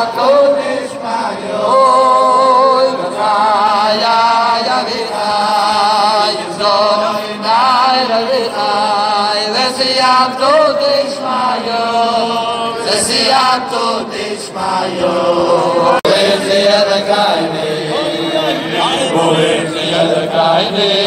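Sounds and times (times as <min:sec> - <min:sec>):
men singing together: 0:00.0 - 0:21.0.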